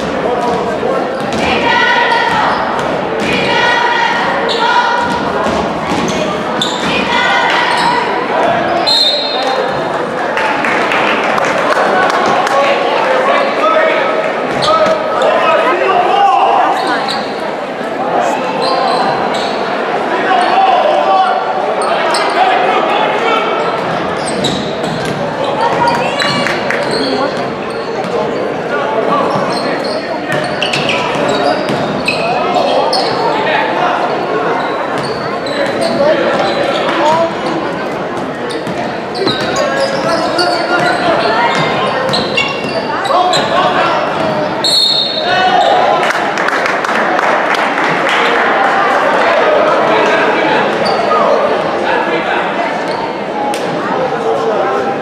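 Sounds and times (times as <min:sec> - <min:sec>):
sneakers squeaking: 0:00.0 - 0:10.0, 0:14.4 - 0:15.7, 0:16.6 - 0:17.5, 0:18.5 - 0:20.6, 0:21.8 - 0:22.6, 0:23.4 - 0:45.9, 0:50.7 - 0:51.5, 0:52.7 - 0:53.8
babble of voices: 0:00.0 - 0:55.0.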